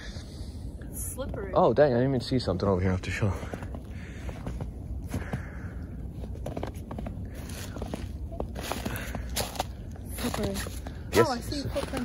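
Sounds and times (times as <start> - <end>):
footsteps crunching in snow: 3.4 - 12.0.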